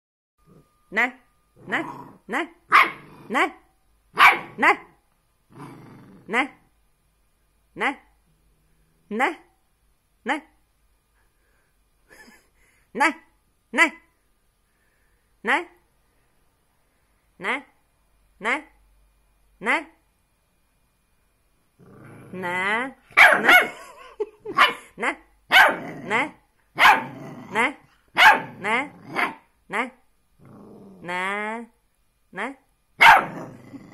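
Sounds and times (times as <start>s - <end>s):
puppy growling: 1.6s - 4.8s, 5.5s - 6.6s, 21.8s - 24.9s, 25.6s - 29.5s, 30.4s - 31.2s, 33.0s - 33.9s
puppy barking: 2.7s - 3.1s, 4.2s - 4.9s, 23.1s - 24.9s, 25.5s - 26.0s, 26.8s - 27.2s, 28.1s - 29.5s, 33.0s - 33.5s.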